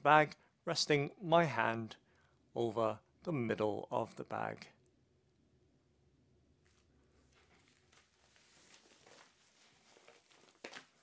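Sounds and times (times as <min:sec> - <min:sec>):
plastic bag rustling and crinkling: 0:06.6 - 0:11.0.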